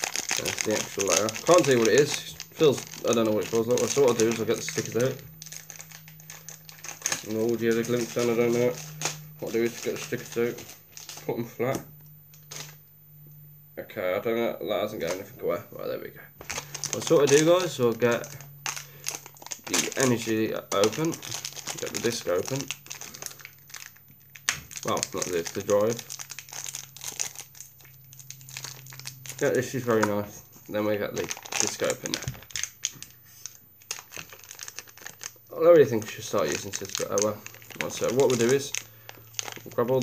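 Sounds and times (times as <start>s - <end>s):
plastic wrapper crinkling: 0.0s - 12.8s, 16.4s - 40.0s
faint low hum: 0.0s - 40.0s.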